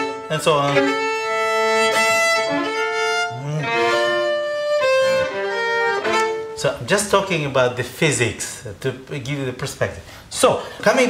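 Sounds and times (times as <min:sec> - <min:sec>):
solo violin bowed slowly: 0:00.0 - 0:06.9.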